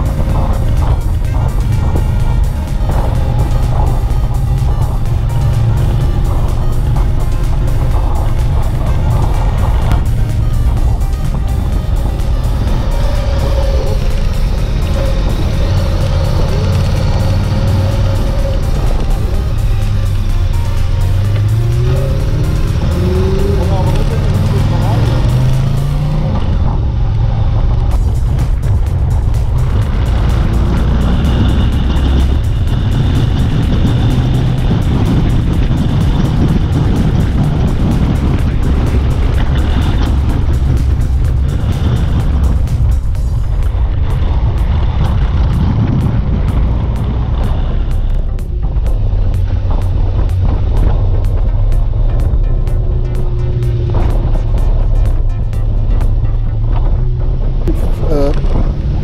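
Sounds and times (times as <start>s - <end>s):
background music: 0.0s - 59.0s
motorcycle engine upshifting: 0.0s - 59.0s
wind noise: 0.0s - 59.0s.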